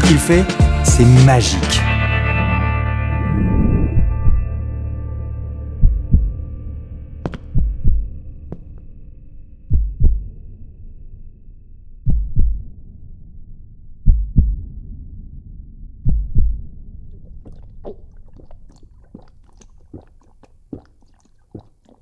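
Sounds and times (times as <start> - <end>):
heartbeat thumps: 3.6 - 4.6, 5.8 - 6.4, 7.3 - 8.7, 9.7 - 10.4, 12.1 - 12.7, 14.0 - 14.8, 16.0 - 19.3.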